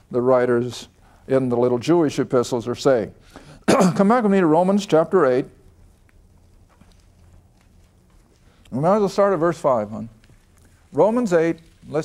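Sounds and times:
pages turning: 0:06.0 - 0:12.0.

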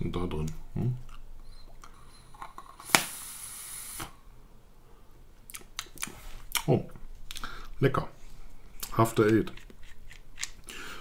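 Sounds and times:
hissing air and coil: 0:02.8 - 0:04.2.

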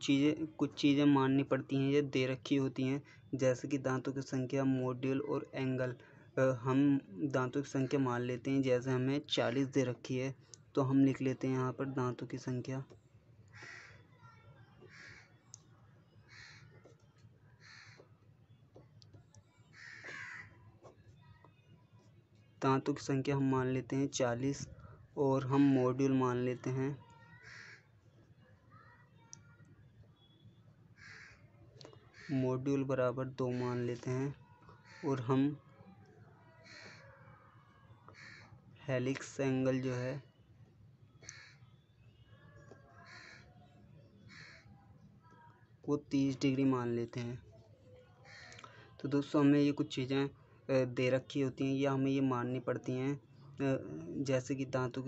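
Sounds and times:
crow cawing: 0:13.5 - 0:14.1, 0:14.9 - 0:15.4, 0:16.3 - 0:16.8, 0:17.6 - 0:18.1, 0:19.7 - 0:20.6, 0:27.3 - 0:27.9, 0:31.0 - 0:32.4, 0:34.8 - 0:35.2, 0:36.6 - 0:37.5, 0:38.1 - 0:38.6, 0:41.2 - 0:41.8, 0:43.0 - 0:43.6, 0:44.3 - 0:44.7, 0:48.3 - 0:48.8.

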